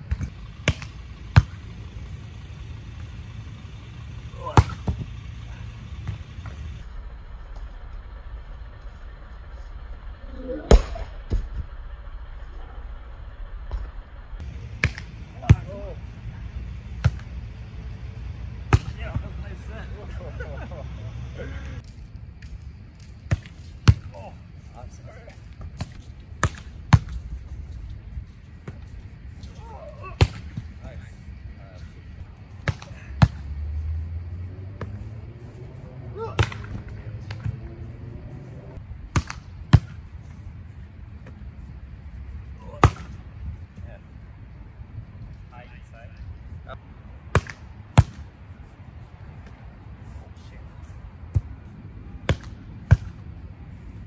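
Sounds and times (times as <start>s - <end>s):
steady low rumble: 0.0s - 54.0s.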